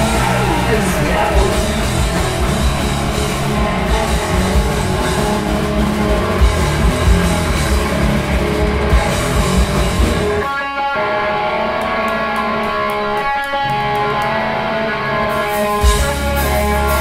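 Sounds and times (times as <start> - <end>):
bass and drums: 0.0 - 10.5, 15.7 - 17.0
distorted electric guitars: 0.0 - 17.0.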